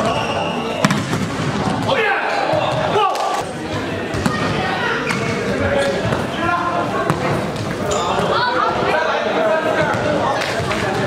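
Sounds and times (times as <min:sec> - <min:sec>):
players shouting: 0:01.7 - 0:03.5.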